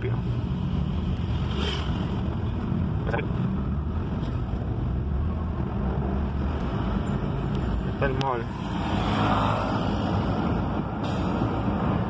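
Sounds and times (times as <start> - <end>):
car engine rumble: 0.0 - 12.0
road noise: 0.0 - 12.0.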